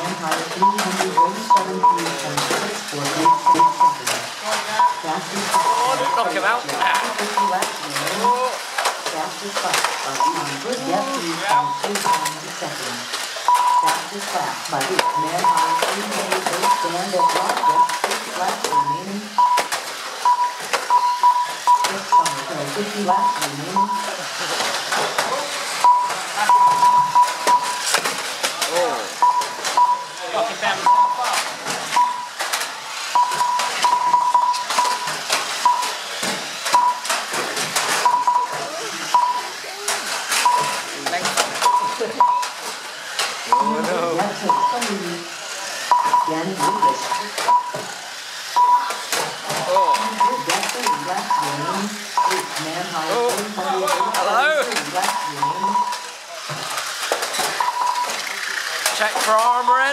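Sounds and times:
short electronic beeps: 0:00.6 - 0:02.2, 0:03.2 - 0:04.1, 0:04.8 - 0:06.5, 0:07.2 - 0:08.5, 0:10.0 - 0:12.4, 0:13.5 - 0:14.1, 0:15.0 - 0:16.0, 0:16.6 - 0:22.5, 0:23.1 - 0:24.1, 0:25.8 - 0:27.9, 0:29.2 - 0:30.2, 0:30.8 - 0:32.3, 0:33.1 - 0:36.0, 0:36.7 - 0:37.1, 0:38.0 - 0:39.5, 0:40.4 - 0:40.9, 0:41.6 - 0:42.6, 0:43.5 - 0:45.0, 0:45.9 - 0:47.8, 0:48.6 - 0:49.0, 0:49.7 - 0:52.6, 0:53.9 - 0:54.4, 0:55.0 - 0:56.1, 0:57.6 - 0:58.2
toy cars clattering into each other: 0:04.0 - 0:04.8, 0:07.0 - 0:10.9, 0:11.6 - 0:18.8, 0:19.4 - 0:23.0, 0:24.2 - 0:29.9, 0:30.8 - 0:59.9.

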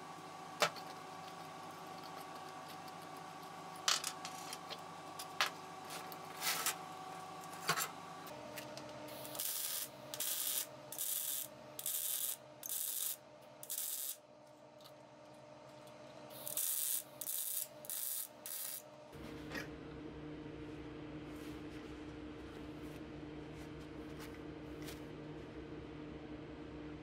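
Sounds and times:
arc welding crackling bursts: 0:09.1 - 0:14.2, 0:16.3 - 0:18.9.

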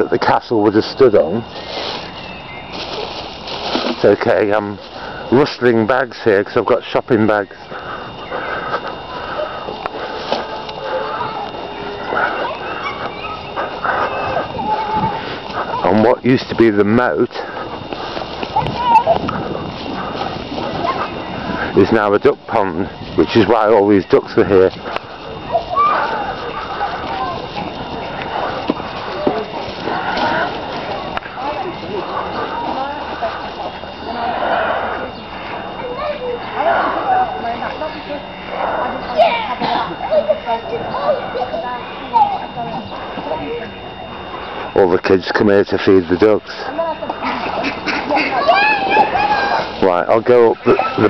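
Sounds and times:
children calling: 0:00.0 - 0:51.0
overlapping voices chattering: 0:00.0 - 0:51.0
plastic bags rustling: 0:00.3 - 0:34.2.

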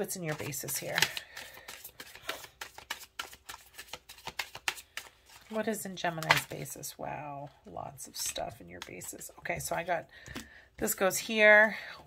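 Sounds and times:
cards being shuffled: 0:00.1 - 0:06.8.

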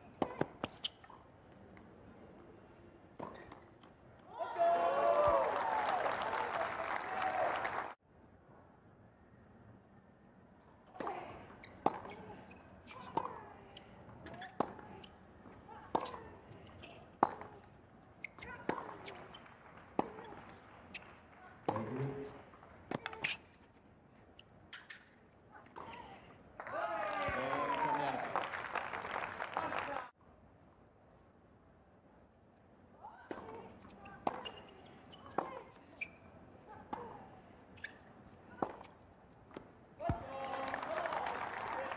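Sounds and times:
racquets striking tennis ball: 0:14.2 - 0:17.6, 0:18.2 - 0:23.4.

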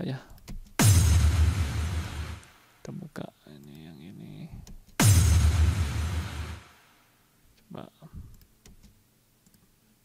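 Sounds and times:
crash-like electronic hit: 0:00.8 - 0:02.5, 0:05.0 - 0:06.9
deep boom sweeping down: 0:00.8 - 0:02.5, 0:05.0 - 0:06.7.

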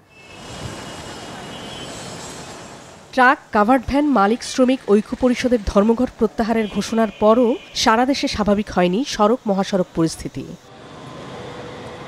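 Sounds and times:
vehicle traffic rushing: 0:00.0 - 0:03.2, 0:10.7 - 0:12.0.

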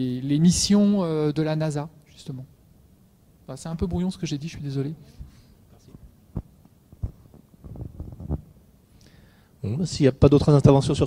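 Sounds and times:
soft low thumps: 0:06.0 - 0:08.6.

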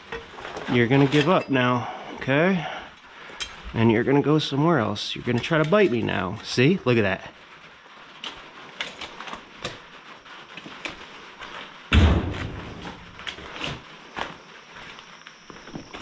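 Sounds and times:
footsteps: 0:00.0 - 0:16.0
heavy thump: 0:11.9 - 0:13.2.

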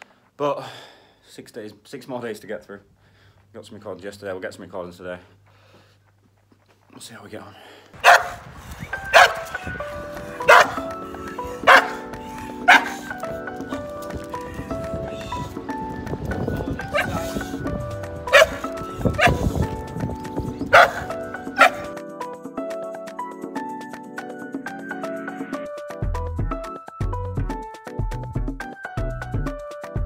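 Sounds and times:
dog barking: 0:08.0 - 0:08.4, 0:09.1 - 0:13.2, 0:16.9 - 0:17.5, 0:18.3 - 0:19.6, 0:20.6 - 0:21.9
background music: 0:08.0 - 0:30.0.

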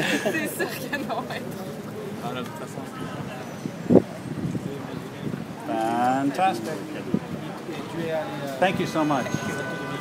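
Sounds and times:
murmur of street chatter: 0:00.0 - 0:10.0.

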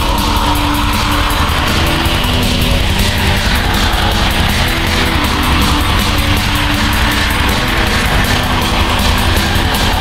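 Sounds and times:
distorted guitars and drums: 0:00.0 - 0:10.0
fast cymbal hits: 0:00.0 - 0:10.0.

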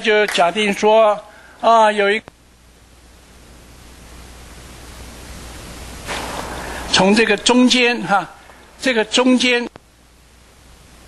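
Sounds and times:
room tone hiss: 0:00.0 - 0:11.0
low hum: 0:02.3 - 0:11.0.

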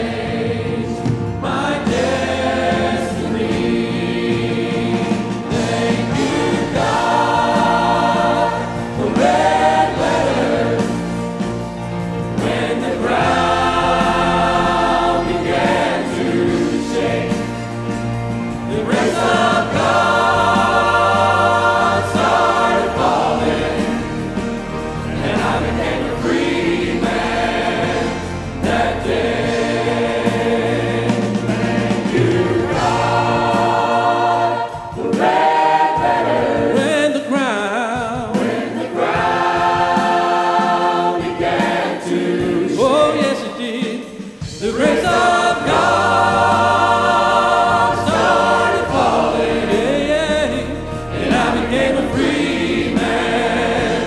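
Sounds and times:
choir singing praise song: 0:00.0 - 0:54.0
instrumental accompaniment: 0:00.0 - 0:54.0.

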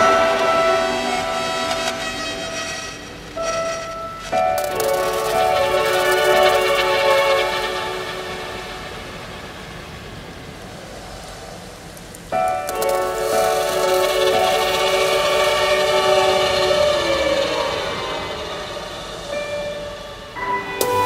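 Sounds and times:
string ensemble holding chords: 0:00.0 - 0:10.1, 0:12.3 - 0:21.0.

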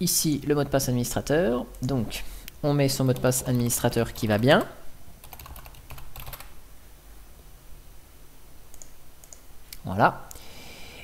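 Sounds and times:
keyboard keystrokes: 0:04.2 - 0:06.5.

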